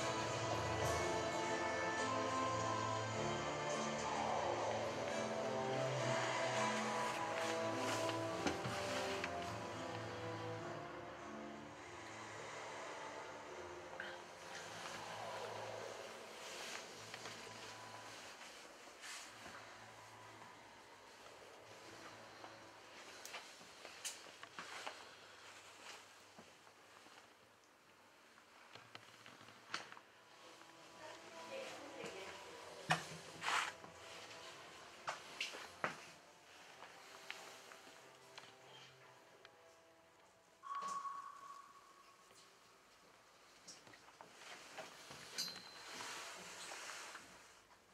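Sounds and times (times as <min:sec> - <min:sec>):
soft rustle: 0:14.4 - 0:38.9, 0:43.4 - 0:47.9
ringing ping: 0:40.6 - 0:42.1.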